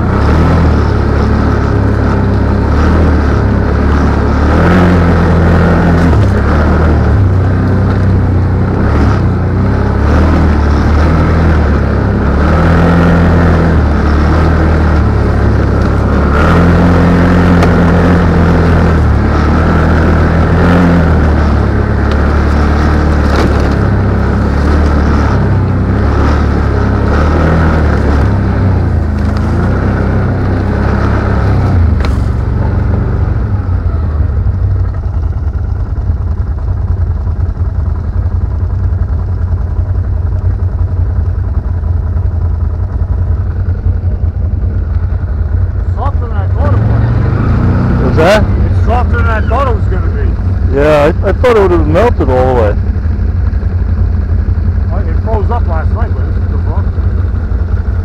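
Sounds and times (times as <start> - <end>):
atv engine running: 0.0 - 58.0.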